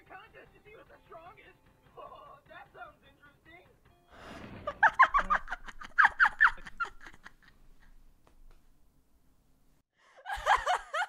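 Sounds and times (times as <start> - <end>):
woman laughing hard: 4.6 - 7.6, 10.1 - 11.0.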